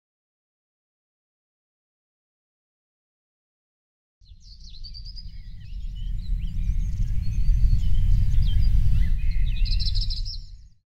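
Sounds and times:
birdsong chirps and whistles: 4.2 - 10.8.

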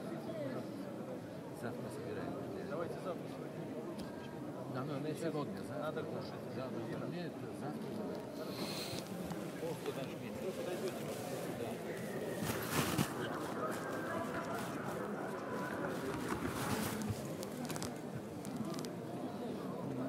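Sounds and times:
indistinct voices in echoing hall: 7.3 - 20.0.

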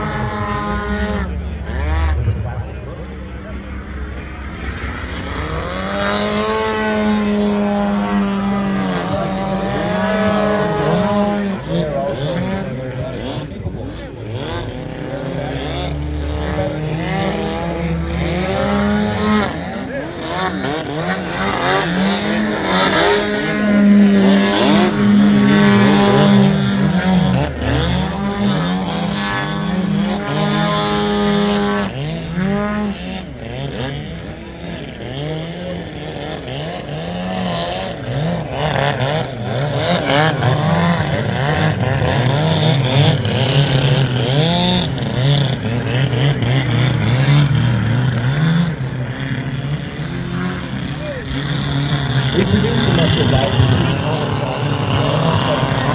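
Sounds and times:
model plane engine: 0.0 - 55.9.

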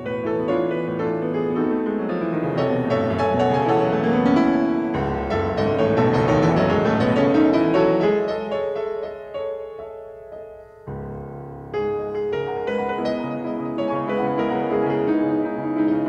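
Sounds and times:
solo piano playing fast: 0.0 - 16.0.

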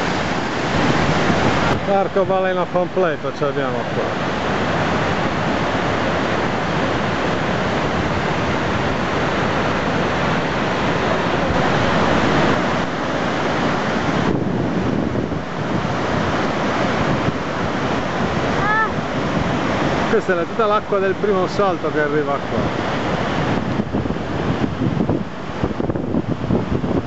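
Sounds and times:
waterfall crashing: 0.0 - 24.5.

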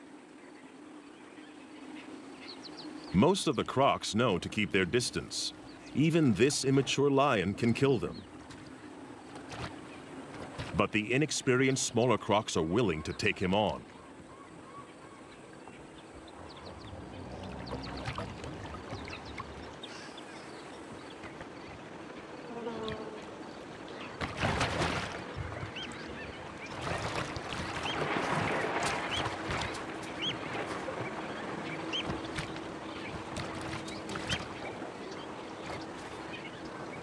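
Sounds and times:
buzzing insects: 15.5 - 36.5.

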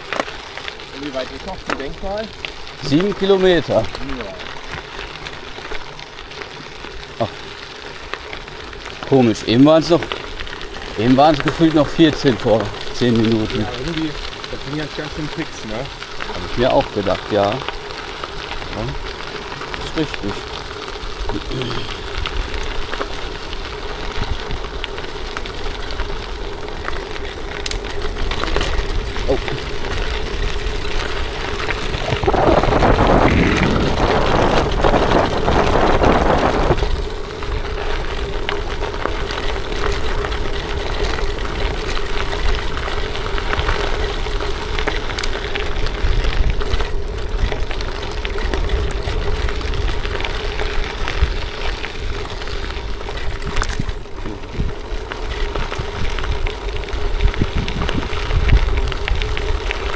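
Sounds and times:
bicycle tyres rolling on gravel: 0.0 - 59.9
wind on microphone: 31.6 - 37.7, 53.2 - 54.9, 55.6 - 59.9.

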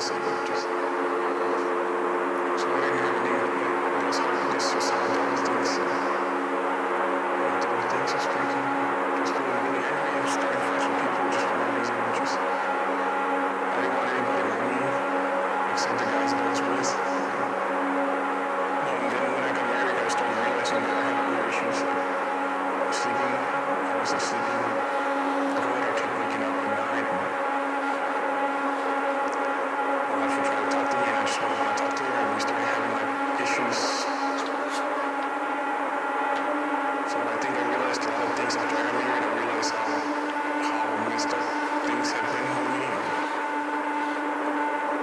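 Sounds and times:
dark drone music: 0.0 - 45.0
dense noisy wash: 0.0 - 45.0.

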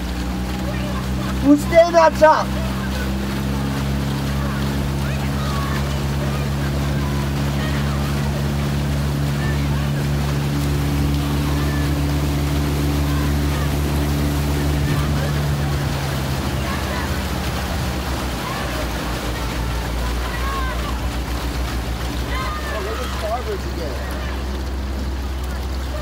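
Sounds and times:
outboard motor running: 0.0 - 26.0
water rushing along hull: 0.0 - 26.0.

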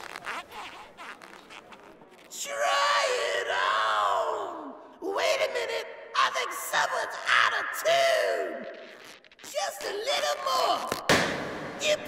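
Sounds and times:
balloons squeaking as twisted: 0.0 - 2.4, 8.6 - 11.1.

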